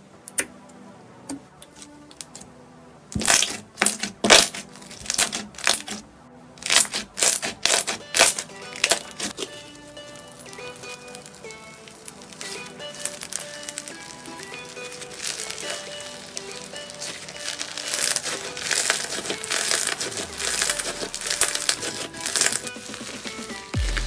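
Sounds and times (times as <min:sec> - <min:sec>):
melodic background music: 0:00.0 - 0:24.0
slime crackling and crinkling: 0:01.7 - 0:02.5, 0:03.1 - 0:24.0.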